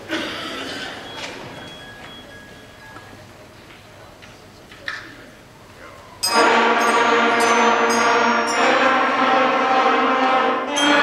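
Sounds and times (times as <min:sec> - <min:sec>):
low audience rustle: 0:00.0 - 0:06.2
faint high steady tones: 0:00.8 - 0:03.4, 0:06.1 - 0:11.0.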